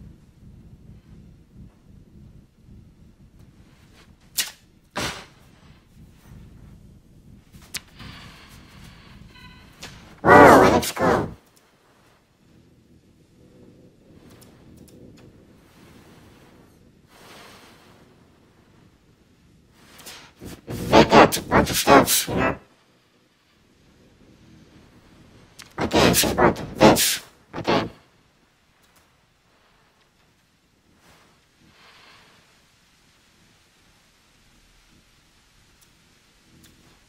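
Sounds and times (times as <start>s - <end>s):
low background rumble: 0.0s - 37.0s
loud pitched burst: 10.2s - 11.4s, 20.0s - 22.6s, 25.6s - 28.0s.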